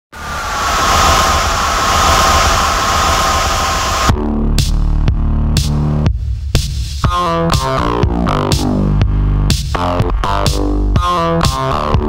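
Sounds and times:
loud rushing noise: 0.1 - 4.2
deep rumble: 0.1 - 6.1.

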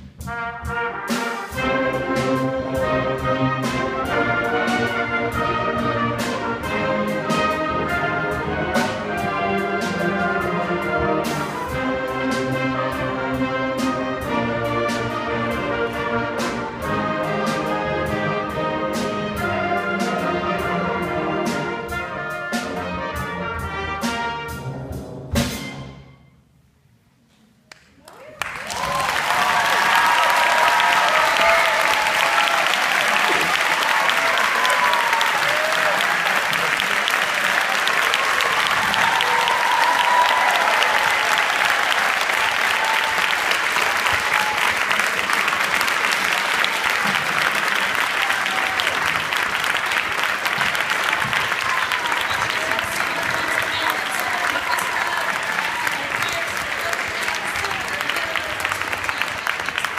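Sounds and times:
audience applauding: 27.7 - 59.9
whoops and shouting voices: 28.2 - 36.2, 38.1 - 43.4, 51.7 - 56.6.

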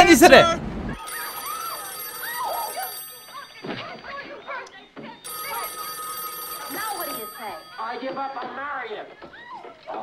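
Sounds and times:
voices: 0.0 - 10.0
telephone ringing: 1.0 - 9.4.

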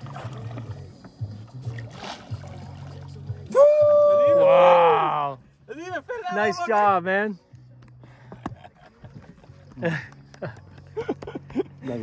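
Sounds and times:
boat motor humming: 0.0 - 5.6.

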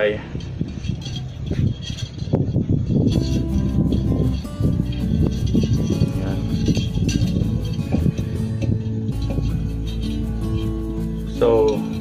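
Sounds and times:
background music with held notes: 3.1 - 12.0.

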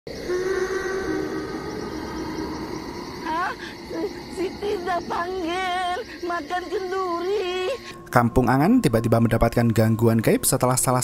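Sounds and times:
horror music drone: 0.1 - 11.0.

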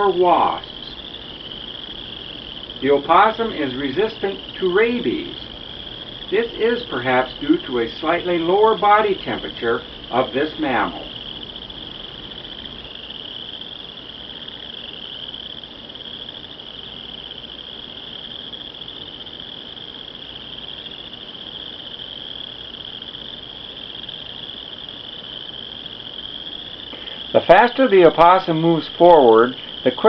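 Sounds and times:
insects trilling: 0.0 - 30.0.

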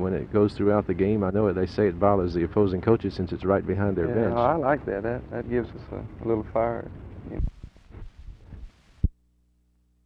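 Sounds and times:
film soundtrack background noise: 0.0 - 9.1
faint steady low hum: 0.0 - 10.0.

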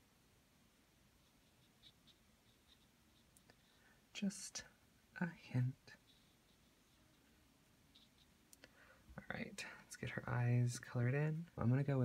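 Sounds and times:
faint clicks: 8.5 - 8.8.

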